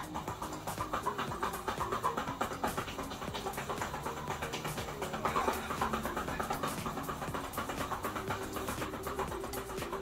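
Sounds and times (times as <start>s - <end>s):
person panting hard: 0.0s - 9.6s
background music: 0.0s - 10.0s.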